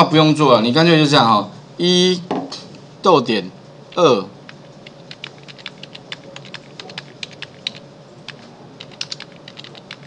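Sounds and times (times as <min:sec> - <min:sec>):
computer keyboard typing: 0:03.9 - 0:10.0.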